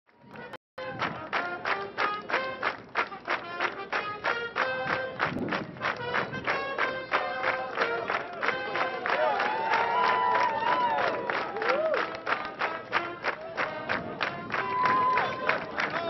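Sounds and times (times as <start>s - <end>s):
held horn notes: 0.3s - 9.2s, 12.1s - 16.0s.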